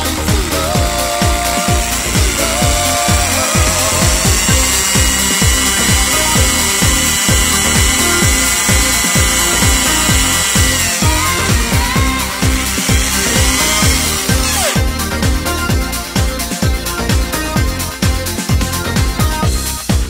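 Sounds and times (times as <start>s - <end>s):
mini drill whining: 0.0s - 19.0s
electronic dance music: 0.0s - 20.0s.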